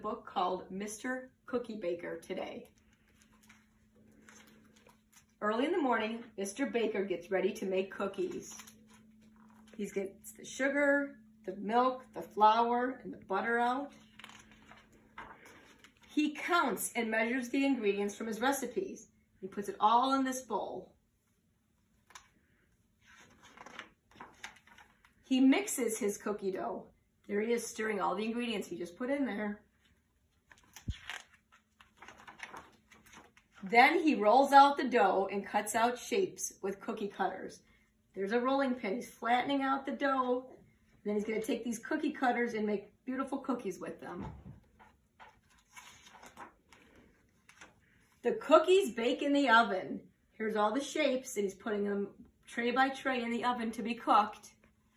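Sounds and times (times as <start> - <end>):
page being turned: 2.6 - 5.4, 8.2 - 9.8, 13.9 - 16.1, 22.0 - 22.4, 23.0 - 25.2, 29.8 - 33.6, 44.6 - 48.2.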